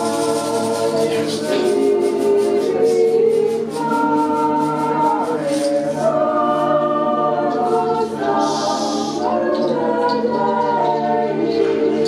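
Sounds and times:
choir singing held notes: 0.0 - 12.0.

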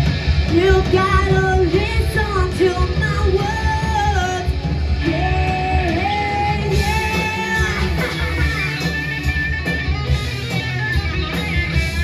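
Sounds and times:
rock band with heavy low end: 0.0 - 12.0
lead vocal singing: 0.6 - 8.8.

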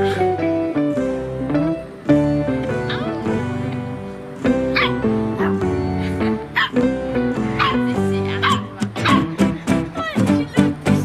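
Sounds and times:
background music: 0.0 - 11.0
puppy yapping: 4.7 - 5.5, 6.6 - 6.8, 7.6 - 7.8, 8.4 - 9.3.

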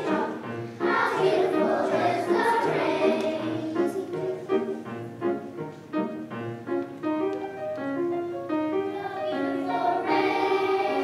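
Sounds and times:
children's choir singing: 0.0 - 4.9, 8.6 - 11.0
piano: 0.0 - 11.0.

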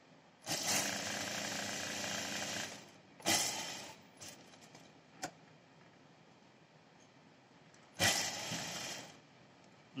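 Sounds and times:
sewing machine running: 0.4 - 4.0, 8.0 - 9.2.

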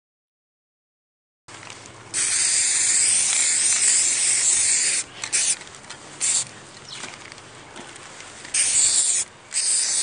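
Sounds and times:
aerosol spray can hissing: 2.2 - 5.6, 6.2 - 6.4, 8.5 - 10.0.

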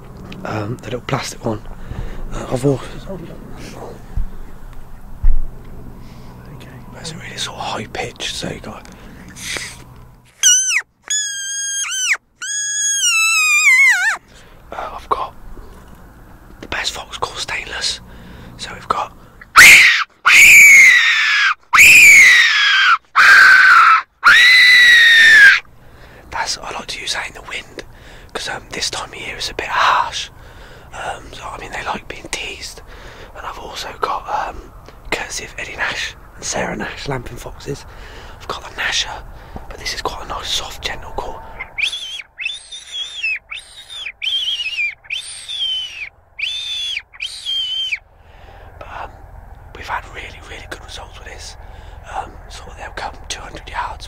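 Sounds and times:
fox call squeals: 10.3 - 14.2, 19.5 - 25.6, 41.5 - 48.0.

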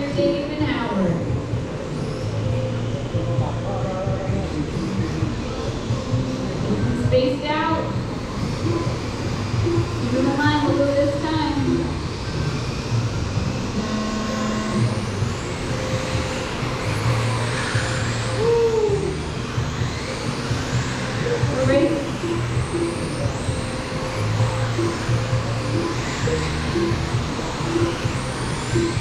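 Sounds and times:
radio-controlled car motors whining: 0.0 - 29.0.

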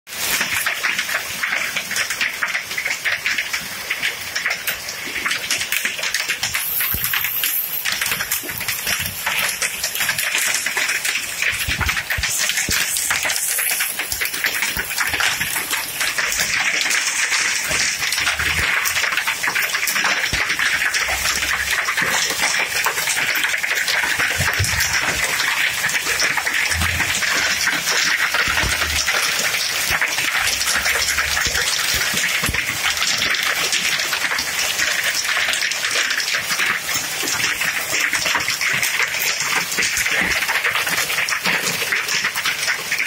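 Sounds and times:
hail on paving: 0.1 - 43.0
heavy rain hiss: 6.4 - 19.2.

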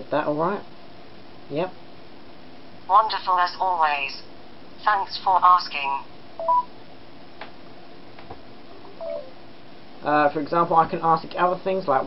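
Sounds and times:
phone assistant beeps: 6.4 - 6.7, 8.9 - 9.3.

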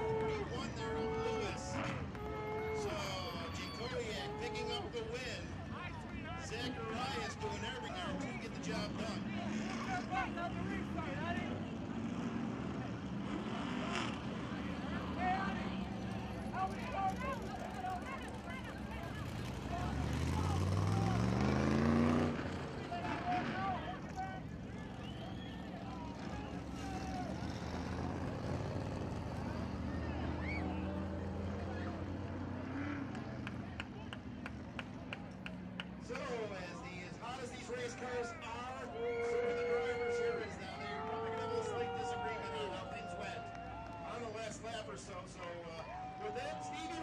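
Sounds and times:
people talking and calling out: 0.0 - 47.0
race car engines idling: 0.0 - 47.0
engine revving: 8.0 - 36.1.

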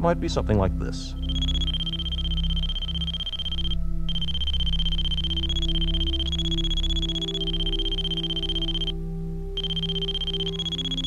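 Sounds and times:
steady high tone shifting pitch: 1.1 - 11.0.

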